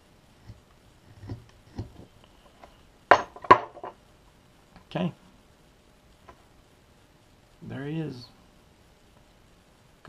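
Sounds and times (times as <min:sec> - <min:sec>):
knife cutting wood: 0:00.4 - 0:02.0.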